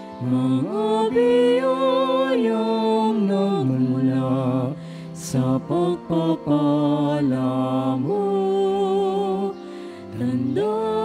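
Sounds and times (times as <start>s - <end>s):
hymn being sung: 0.0s - 11.0s.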